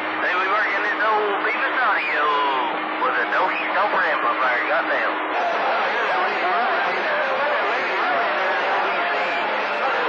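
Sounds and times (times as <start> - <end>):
voice over radio receiver: 0.2 - 5.2.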